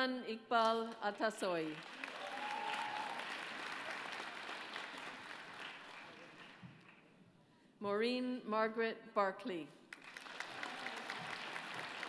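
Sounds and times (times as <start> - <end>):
audience applauding: 1.8 - 7.0, 9.9 - 12.0.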